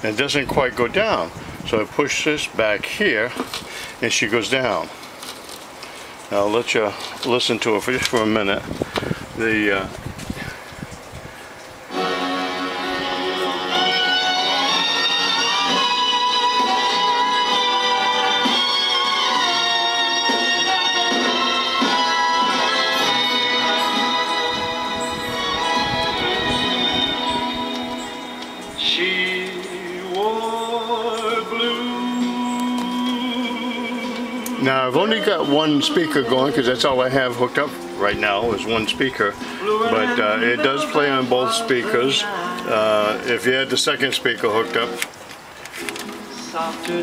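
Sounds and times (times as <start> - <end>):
vinyl record playing music: 11.5 - 47.0.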